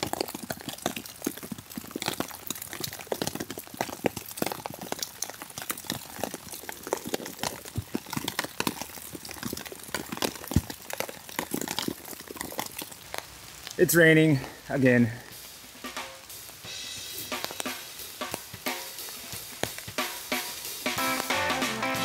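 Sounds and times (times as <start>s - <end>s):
heavy rain falling: 12.9s - 22.0s.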